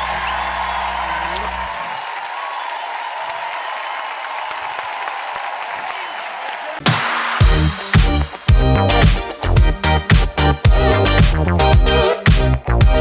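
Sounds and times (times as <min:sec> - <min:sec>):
audience applauding: 0:00.0 - 0:07.4.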